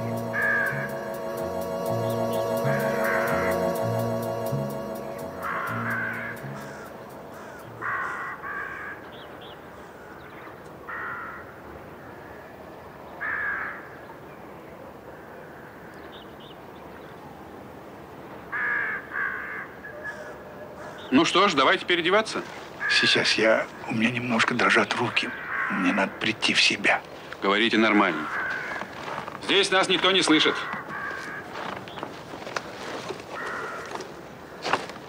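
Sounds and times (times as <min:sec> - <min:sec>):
crows cawing: 0:00.0 - 0:01.3, 0:02.5 - 0:04.8, 0:05.4 - 0:12.5, 0:13.2 - 0:14.0, 0:18.5 - 0:21.1, 0:22.8 - 0:23.7, 0:25.0 - 0:26.3, 0:27.9 - 0:34.9
low music notes: 0:00.0 - 0:08.2
faint steady hiss: 0:00.0 - 0:08.8.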